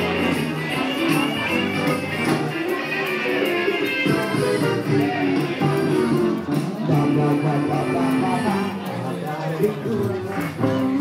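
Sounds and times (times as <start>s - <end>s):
guitar: 0.0s - 11.0s
live band dance music: 0.0s - 11.0s.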